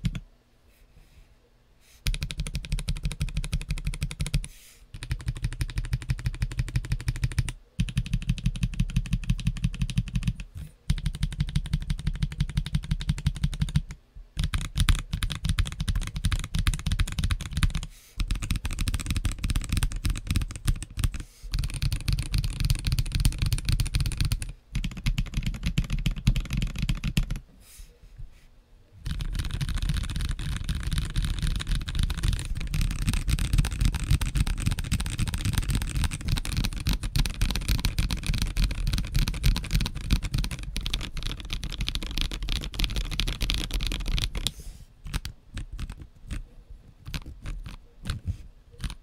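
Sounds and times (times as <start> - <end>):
mechanical keyboard typing: 0.0 - 0.2, 2.0 - 27.4, 29.0 - 46.4, 47.0 - 49.0.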